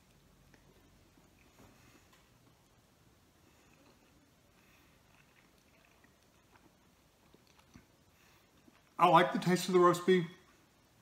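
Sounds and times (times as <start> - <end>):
chewing sandwich: 0.0 - 9.0.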